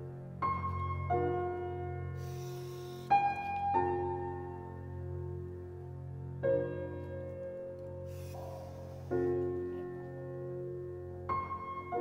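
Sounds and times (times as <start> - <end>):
slow piano music: 0.0 - 12.0
soft hiss: 2.1 - 3.8, 7.9 - 10.2.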